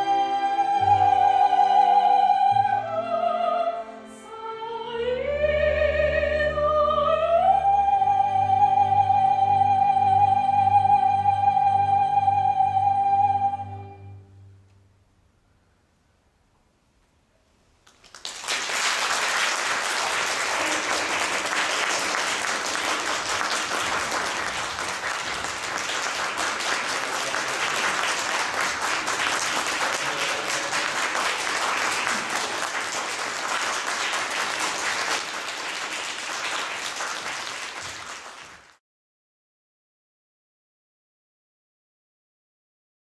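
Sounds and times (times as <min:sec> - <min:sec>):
audience applause: 0:17.9 - 0:38.8.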